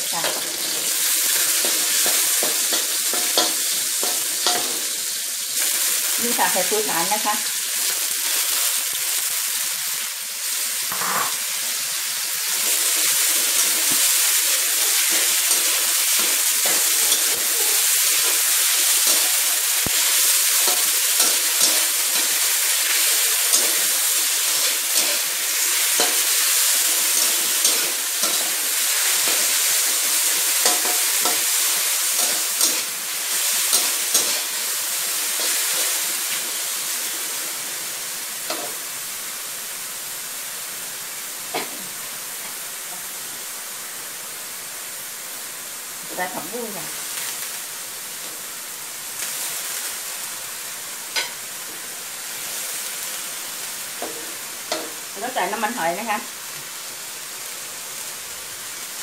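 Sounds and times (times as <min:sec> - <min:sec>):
food sizzling in hot oil: 0:00.0 - 0:59.0
metal spatula scraping a wok: 0:12.5 - 0:36.1, 0:51.1 - 0:51.4.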